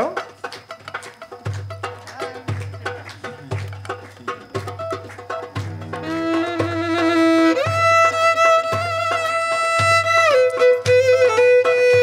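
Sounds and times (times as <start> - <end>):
quick hand-drum strikes: 0.0 - 12.0.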